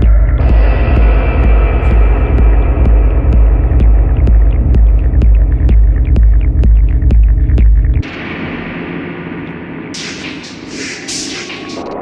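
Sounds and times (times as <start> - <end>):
throbbing sub-bass drone: 0.0 - 11.4
techno music: 9.9 - 12.0.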